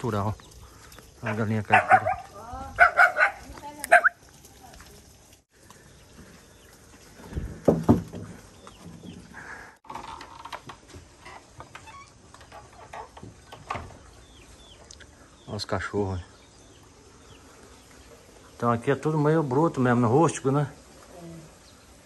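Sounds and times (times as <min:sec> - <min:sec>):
dogs barking and yelping: 0:01.2 - 0:04.2.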